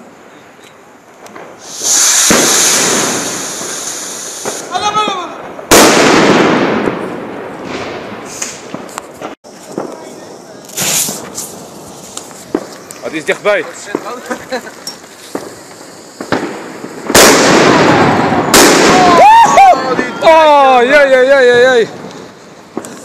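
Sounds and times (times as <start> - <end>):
firework hissing: 0.0 - 23.0
firework bang with echo: 1.3 - 11.3, 15.3 - 20.4.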